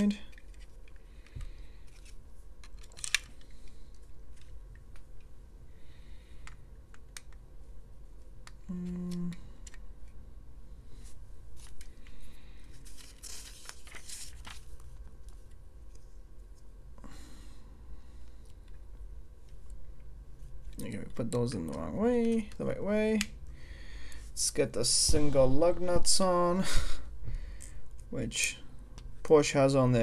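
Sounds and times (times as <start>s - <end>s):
paper page rustling: 12.6s - 16.0s.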